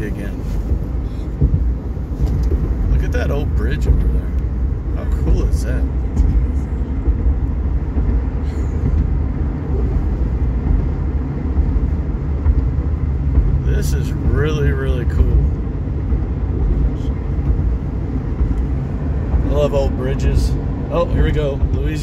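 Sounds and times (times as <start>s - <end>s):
truck road and engine rumble: 0.0s - 22.0s.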